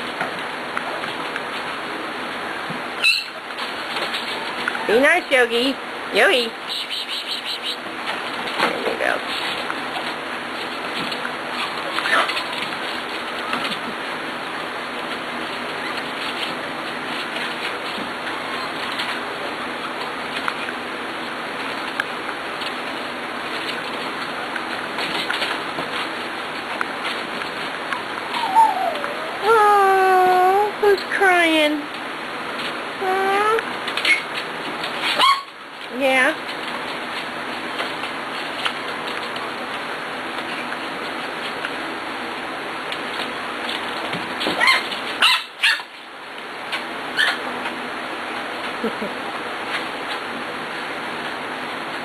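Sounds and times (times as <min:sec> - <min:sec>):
puppy yapping barks: 0:35.1 - 0:35.6, 0:44.6 - 0:45.9.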